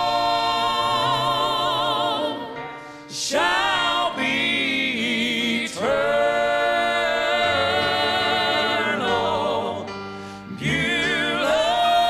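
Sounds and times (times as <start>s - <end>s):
male quartet singing in harmony: 0.0s - 12.0s.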